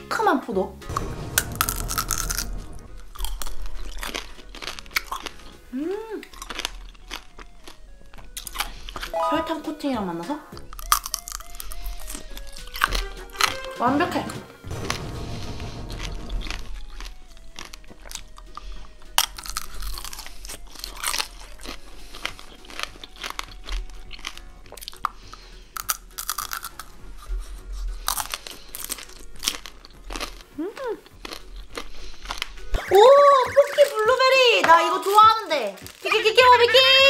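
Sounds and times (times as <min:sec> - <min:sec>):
candy shell crunching: 0:00.9 - 0:09.1, 0:10.5 - 0:13.7, 0:14.6 - 0:37.0
wet chewing: 0:00.9 - 0:09.1, 0:10.5 - 0:37.0.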